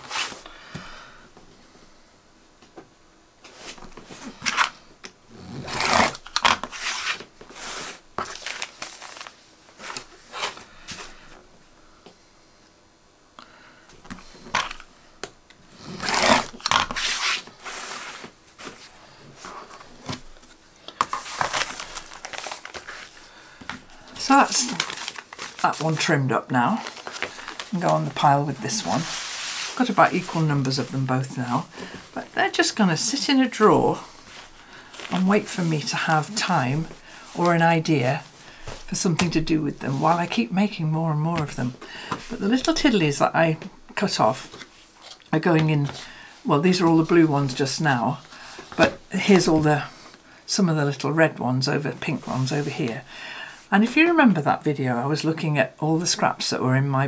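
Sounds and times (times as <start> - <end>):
ruler rustling on cutting mat: 5.8 - 10.6, 16.0 - 23.2, 26.8 - 31.1
ruler swishing over fabric: 28.7 - 29.8.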